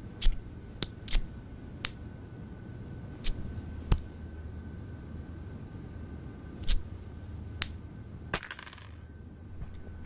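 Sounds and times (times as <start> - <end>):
coin ringing on hard surface: 0.2 - 1.8, 8.3 - 9.0
coins jangling: 8.3 - 9.0.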